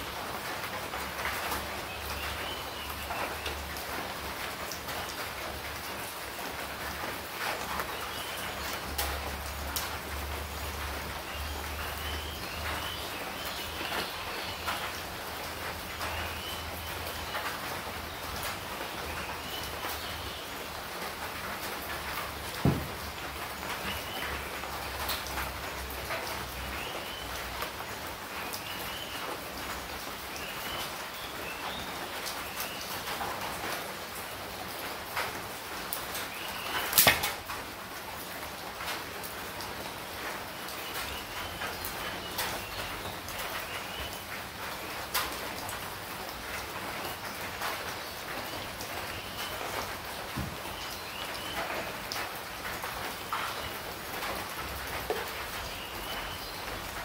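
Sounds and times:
sharp knock: 22.6s - 23.0s.

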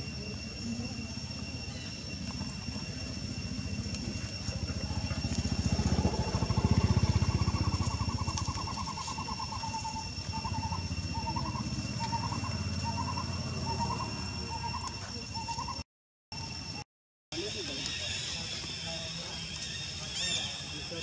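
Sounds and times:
motor engine rumble: 0.0s - 15.7s
steady high whine: 0.0s - 16.8s.

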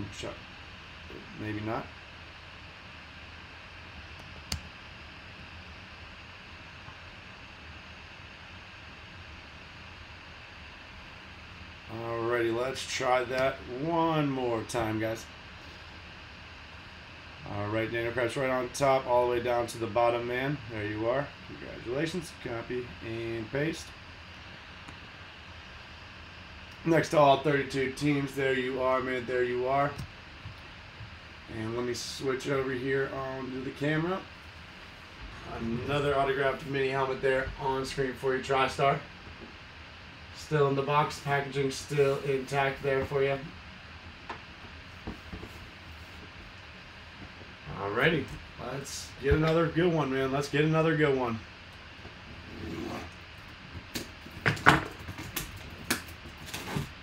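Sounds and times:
room background hiss and hum: 0.0s - 57.0s.

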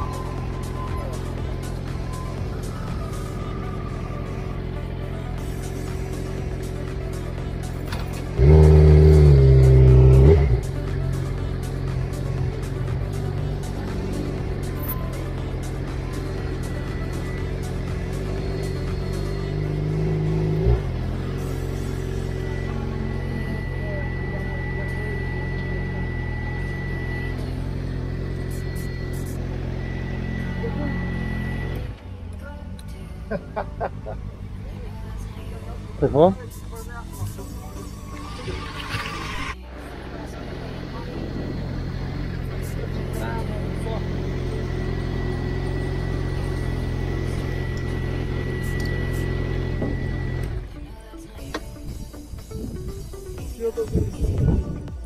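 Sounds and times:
motorcycle engine running: 0.0s - 55.0s
music: 0.0s - 55.0s.

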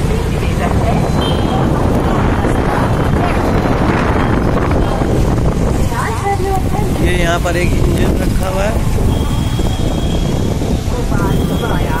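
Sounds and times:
road traffic rumble: 0.0s - 12.0s
voices: 0.0s - 12.0s
wind buffeting microphone: 0.0s - 12.0s.

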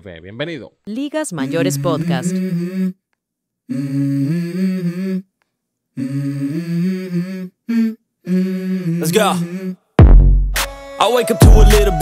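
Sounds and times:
person humming a melody: 3.7s - 5.3s, 6.0s - 9.8s.

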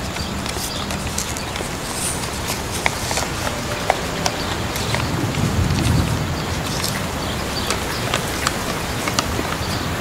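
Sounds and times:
steady background hiss: 0.0s - 9.5s.

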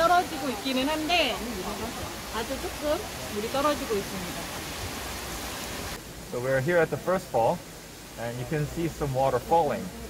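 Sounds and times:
falling water hiss: 0.0s - 10.0s.

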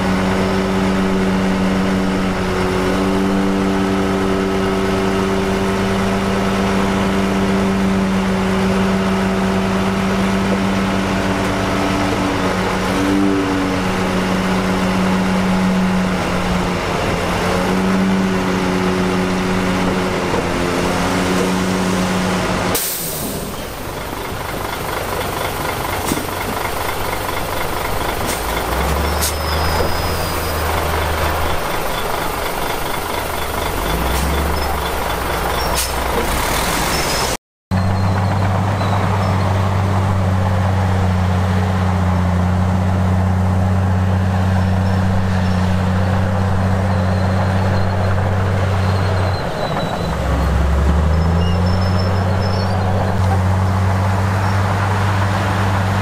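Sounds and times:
heavy diesel engine running: 0.0s - 56.0s
lower diesel engine with ticking: 0.0s - 56.0s.

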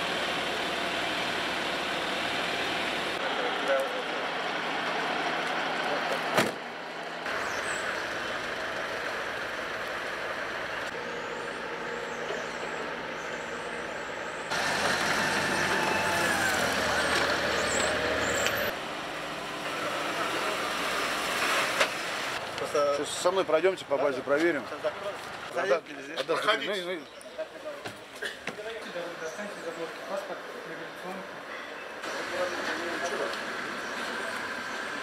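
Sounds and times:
low engine rumble: 0.0s - 23.3s
traffic engines running: 0.0s - 35.0s.

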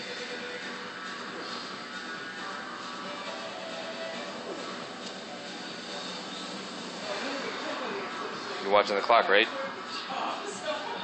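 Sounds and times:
gym background hum: 0.0s - 11.0s.

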